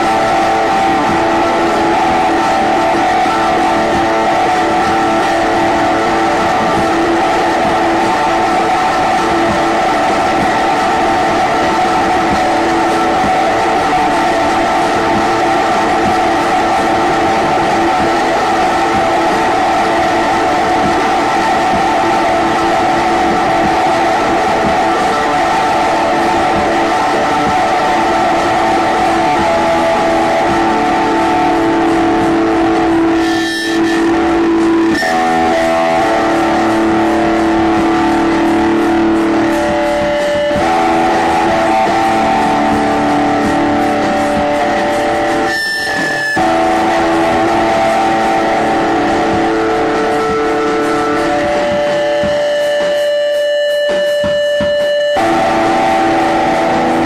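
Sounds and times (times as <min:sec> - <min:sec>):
distorted electric guitar drone: 0:00.0 - 0:57.0.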